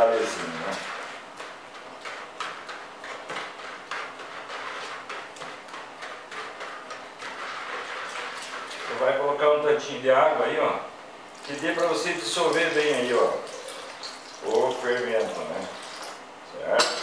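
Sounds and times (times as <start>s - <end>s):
spoon stirring in plastic bowl: 0.0s - 9.1s.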